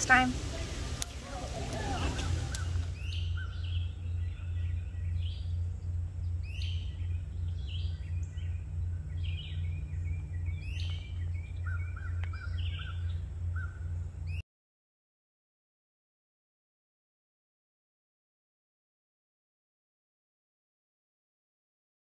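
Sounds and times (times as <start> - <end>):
birds whistling: 0.0 - 14.4
steady low hum: 0.0 - 14.4.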